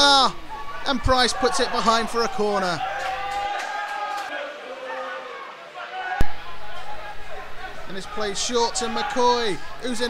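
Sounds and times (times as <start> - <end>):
players shouting: 0.0 - 10.0.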